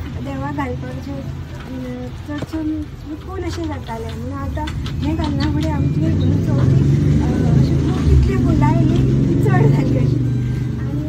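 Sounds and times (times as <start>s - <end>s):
vehicle engine rumble passing: 0.0s - 11.0s
woman speaking: 0.0s - 11.0s.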